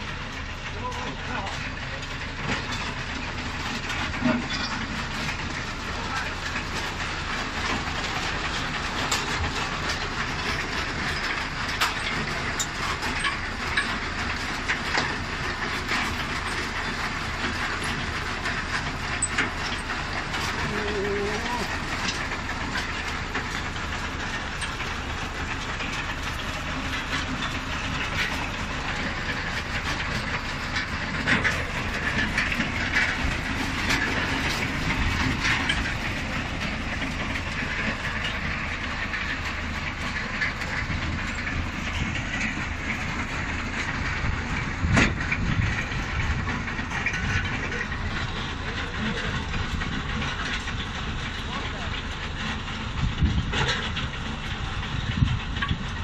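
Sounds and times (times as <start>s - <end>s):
conveyor chains and potatoes rattling: 0.0s - 56.0s
tractor engine running: 0.0s - 56.0s.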